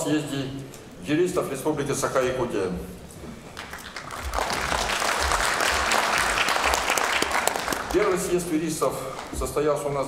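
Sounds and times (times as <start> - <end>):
audience applauding: 3.5 - 9.4.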